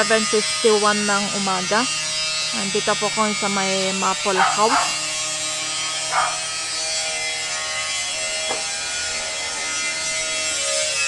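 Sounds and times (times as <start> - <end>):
power tool motor whining: 0.0 - 11.0.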